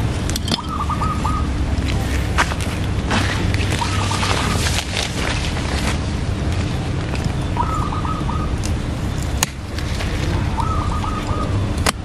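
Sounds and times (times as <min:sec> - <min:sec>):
low background rumble: 0:00.0 - 0:12.0
bird chirping: 0:00.4 - 0:01.6, 0:03.7 - 0:04.6, 0:07.2 - 0:08.6, 0:10.3 - 0:11.7.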